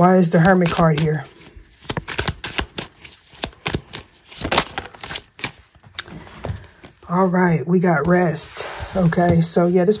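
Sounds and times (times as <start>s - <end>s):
cards being shuffled: 0.1s - 7.0s.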